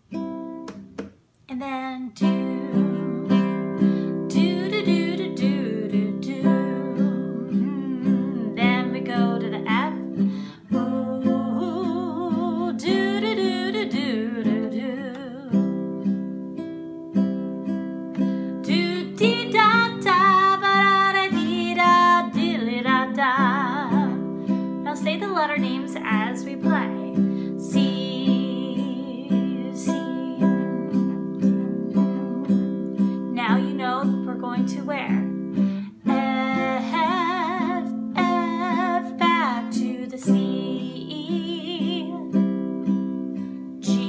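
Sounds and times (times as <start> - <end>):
classical guitar strumming blues: 0.0 - 44.0
woman singing: 1.5 - 16.2, 18.2 - 42.6, 43.3 - 44.0.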